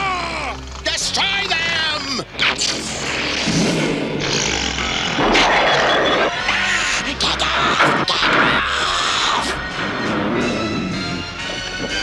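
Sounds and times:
background music: 0.0s - 12.0s
noisy energy-blast effect: 5.1s - 6.6s.

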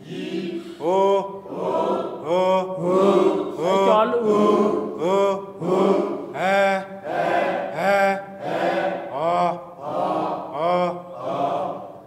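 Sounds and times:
person chanting a vowel: 0.0s - 11.4s.

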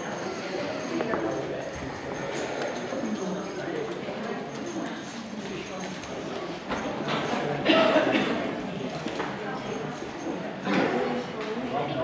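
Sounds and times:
many people talking: 0.0s - 12.0s.

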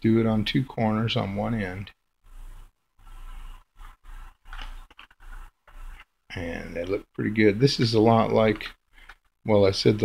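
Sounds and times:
paper money crinkling: 3.1s - 6.2s.

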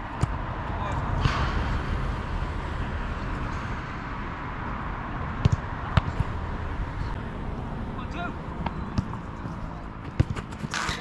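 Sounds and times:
football being kicked: 5.4s - 6.4s, 8.6s - 9.2s, 10.0s - 11.0s.

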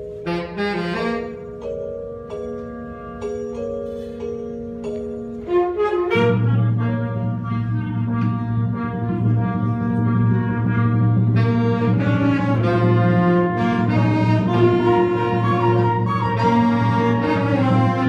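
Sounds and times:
school band playing: 0.0s - 18.0s.

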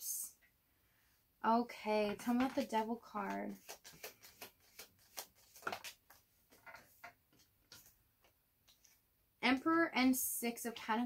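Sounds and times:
cards being shuffled: 2.1s - 8.0s.

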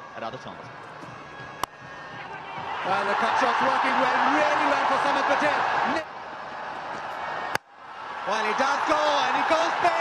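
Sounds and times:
stadium crowd hum: 0.0s - 10.0s.

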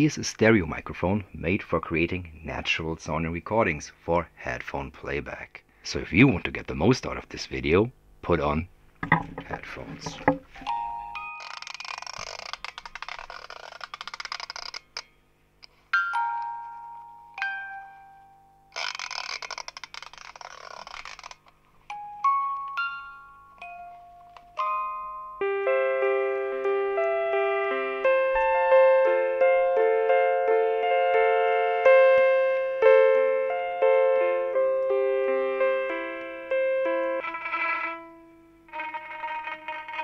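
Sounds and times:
music box chiming notes: 10.6s - 11.4s, 15.9s - 18.7s, 21.9s - 34.9s
scratchy rustling noise: 11.4s - 15.0s, 18.7s - 21.5s
electronic instrument chords: 25.2s - 40.0s.

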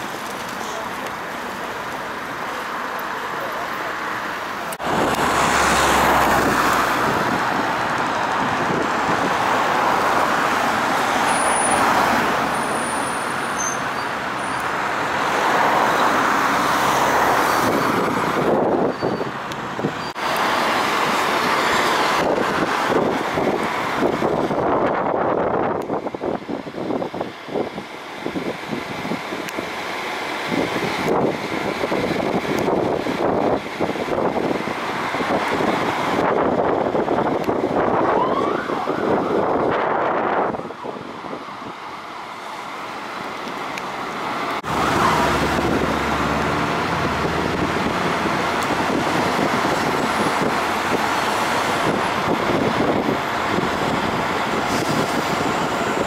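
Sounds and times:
fire engine diesel engine: 0.0s - 56.0s
passing road traffic: 0.0s - 56.0s.

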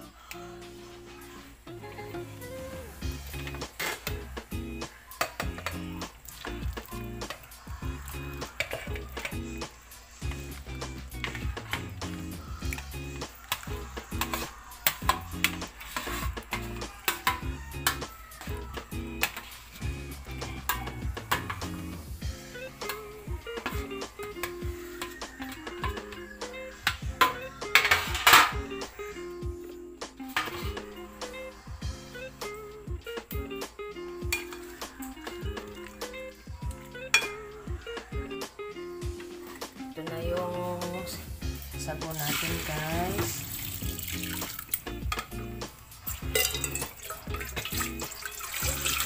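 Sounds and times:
background music: 0.0s - 49.0s
plastic scoop clinking on metal and glass: 5.2s - 7.5s, 8.4s - 9.4s, 26.8s - 28.6s, 30.3s - 30.8s, 42.1s - 49.0s
scoop scraping: 11.2s - 22.1s.

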